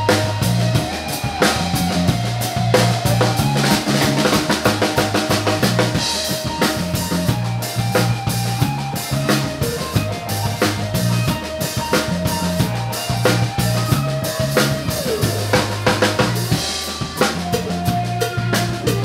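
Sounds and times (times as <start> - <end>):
drum kit hits: 0.0 - 19.0
electric bass notes: 0.0 - 19.0
electric guitar: 0.0 - 19.0.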